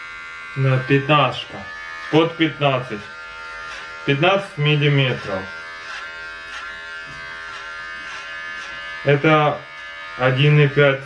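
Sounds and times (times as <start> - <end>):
electric hair clipper buzzing: 0.0 - 11.0.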